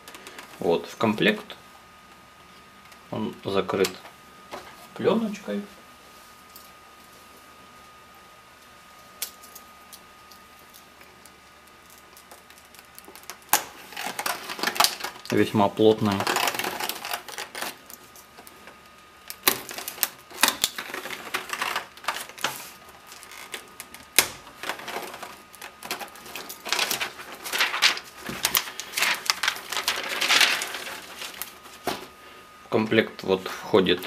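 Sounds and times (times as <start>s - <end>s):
plastic film crinkling: 9.2s - 32.1s.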